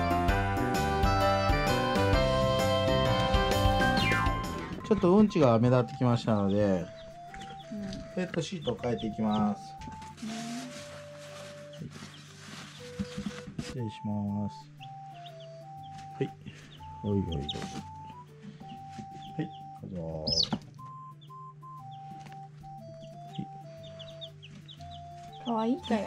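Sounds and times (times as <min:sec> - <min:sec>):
background music with simple melody: 0:00.0 - 0:26.0
chicks peeping: 0:02.3 - 0:26.0.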